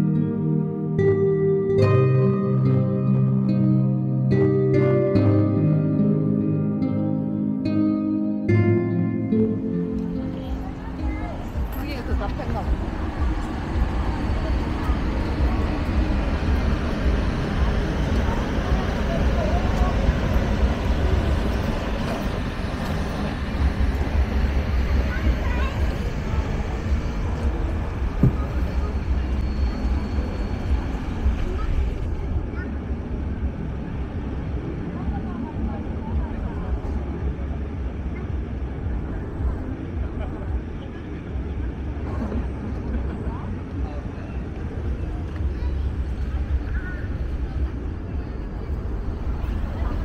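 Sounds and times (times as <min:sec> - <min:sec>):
indistinct chatter of people: 0:00.0 - 0:50.0
low rumble of traffic: 0:00.0 - 0:50.0.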